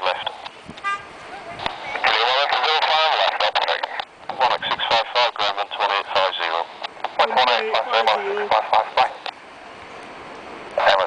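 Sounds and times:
radio voice through speaker: 0.0 - 0.5, 1.6 - 9.3, 10.8 - 11.0.

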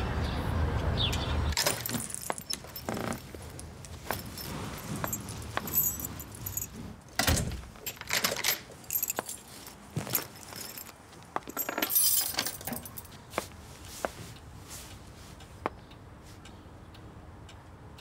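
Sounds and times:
street traffic rumble: 0.0 - 18.0
keys jangling: 1.6 - 13.2
front door clicks and knocks: 7.1 - 8.7.

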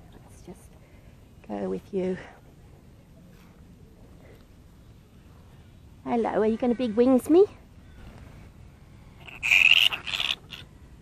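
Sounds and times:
bat pup screeching: 9.2 - 10.7.

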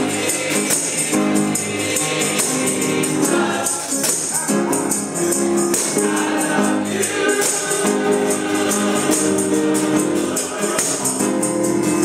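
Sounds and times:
gospel choir singing: 0.0 - 12.0
organ: 0.0 - 12.0
tambourine shaken and struck: 0.0 - 12.0.

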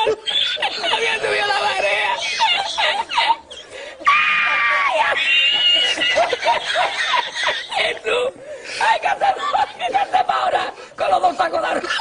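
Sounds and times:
person laughing uncontrollably: 0.0 - 8.1, 8.8 - 10.7.

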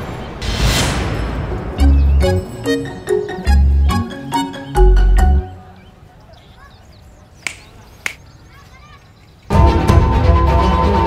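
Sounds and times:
finger snap: 7.4 - 8.2.

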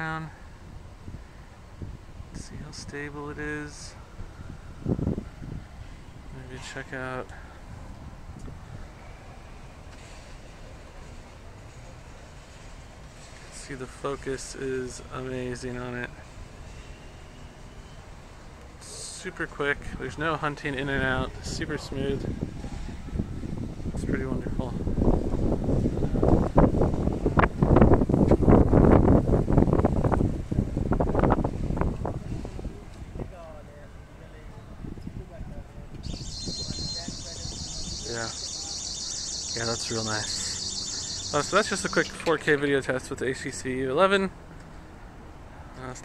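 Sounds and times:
street traffic rumble: 0.0 - 46.0
wind buffeting microphone: 0.4 - 3.0, 4.0 - 11.2, 20.9 - 33.4, 34.5 - 42.0.

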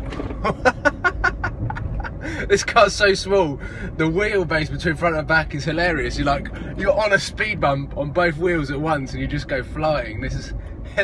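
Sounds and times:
low rumble of car cabin: 0.0 - 11.0
man laughing hard: 0.4 - 2.5.

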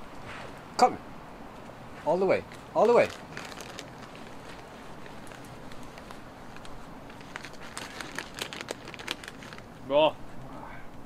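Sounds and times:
outdoor hiss: 0.0 - 11.0.

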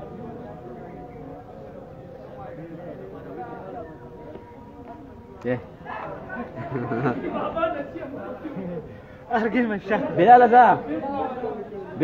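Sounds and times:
men's indistinct chatter: 0.0 - 12.0.

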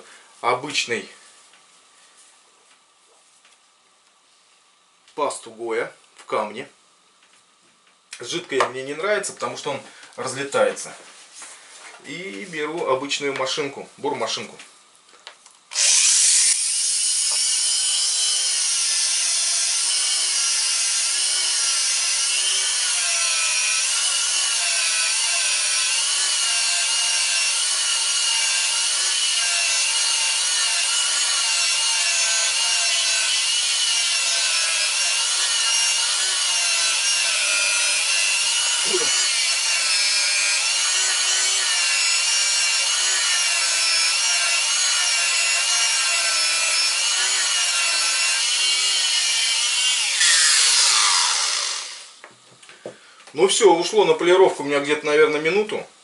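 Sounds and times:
rotary drill high whine: 15.7 - 52.2.

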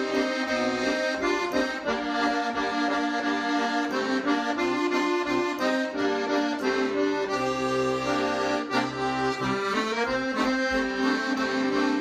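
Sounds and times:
button accordion playing folk tune: 0.0 - 12.0.

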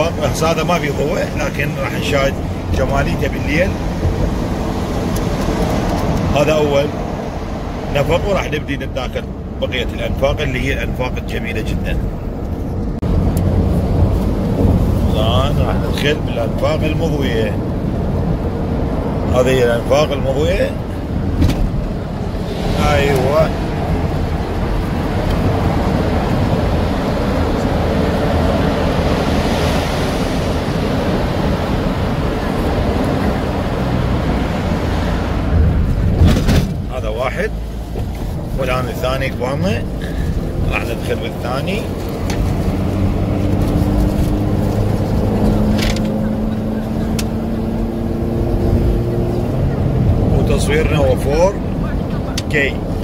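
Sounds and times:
car road and tyre noise: 0.0 - 53.0.

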